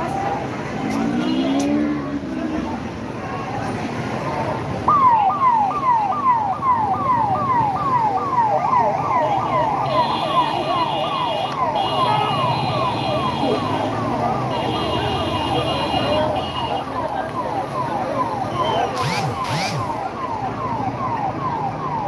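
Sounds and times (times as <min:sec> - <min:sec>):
crowd voices: 0:00.0 - 0:22.0
ambulance siren: 0:03.8 - 0:22.0.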